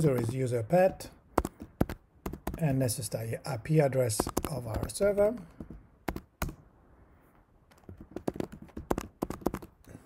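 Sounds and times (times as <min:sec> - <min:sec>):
keyboard typing: 0:01.4 - 0:02.6, 0:04.2 - 0:04.9, 0:05.6 - 0:06.6, 0:07.7 - 0:09.9.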